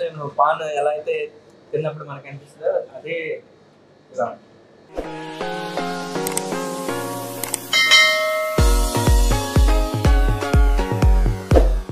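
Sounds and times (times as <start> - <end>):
quick clicks: 6.2 - 6.5, 7.4 - 7.7
electronic music with bass beat: 6.5 - 11.9
bright bell chime: 7.7 - 9.2.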